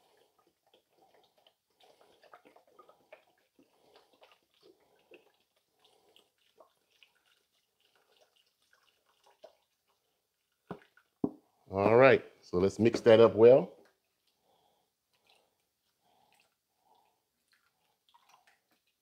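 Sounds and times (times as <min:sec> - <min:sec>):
liquid trickling and splashing: 0:00.0 - 0:11.5, 0:13.8 - 0:19.0.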